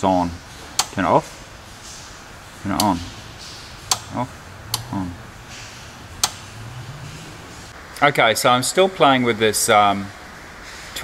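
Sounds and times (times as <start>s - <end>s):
light switch click: 3.9s - 4.1s, 6.2s - 6.4s.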